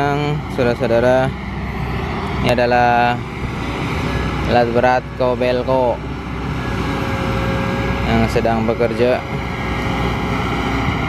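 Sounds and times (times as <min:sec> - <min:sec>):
excavator diesel engine rumbling: 0:00.0 - 0:11.0
hydraulic whine: 0:00.0 - 0:11.0.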